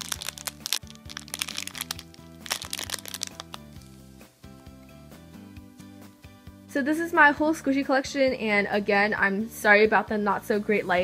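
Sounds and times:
plastic bag crinkling: 0:00.0 - 0:03.8
background music: 0:00.0 - 0:11.0.

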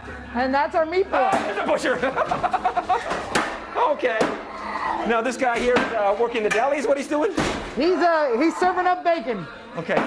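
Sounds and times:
person laughing: 0:01.9 - 0:03.3.

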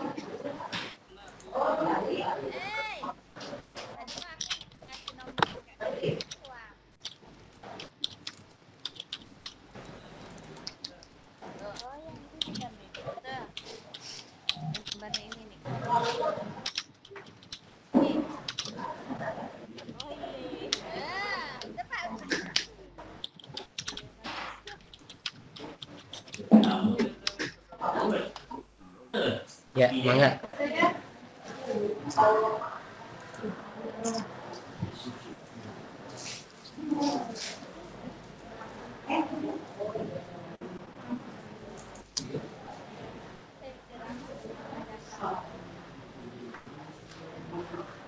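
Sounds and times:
keyboard typing: 0:04.0 - 0:18.9, 0:21.6 - 0:27.5
faint indistinct voices: 0:09.8 - 0:29.7, 0:30.4 - 0:48.0.

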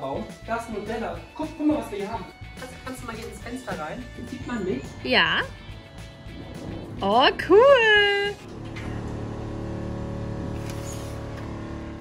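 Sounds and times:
water pump humming dry: 0:05.2 - 0:12.0.

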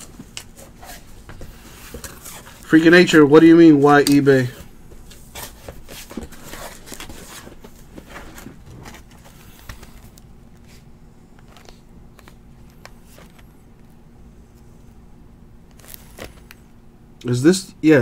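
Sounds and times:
cardboard box rustling: 0:05.3 - 0:10.0.

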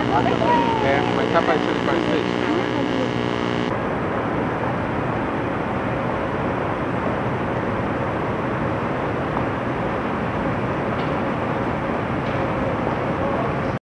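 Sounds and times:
faint steady hum: 0:00.0 - 0:03.8.

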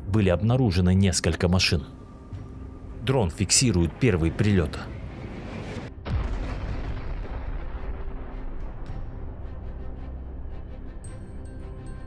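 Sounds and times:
explosion boom and rumble: 0:05.4 - 0:09.8.

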